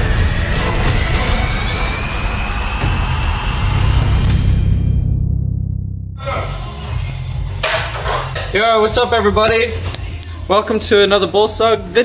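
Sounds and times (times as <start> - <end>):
deep rumble: 0.0 - 7.6
intro music: 0.0 - 12.0.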